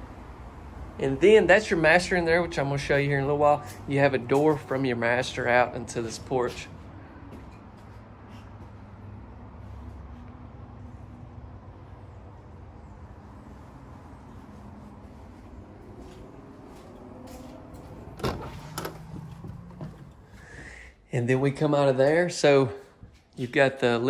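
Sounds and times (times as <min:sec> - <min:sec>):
door opening and shutting: 0:18.0 - 0:20.3.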